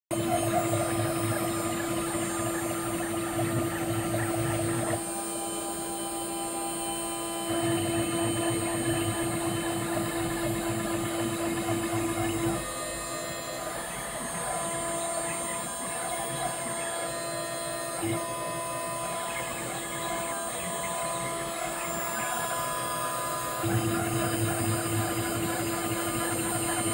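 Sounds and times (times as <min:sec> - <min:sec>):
milling machine spindle whine: 0:00.1 - 0:26.9.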